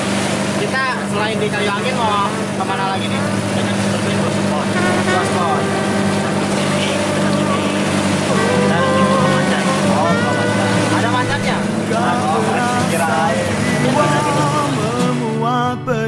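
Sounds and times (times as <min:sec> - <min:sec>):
boat engine running: 0:00.0 - 0:16.0
people talking: 0:00.5 - 0:16.0.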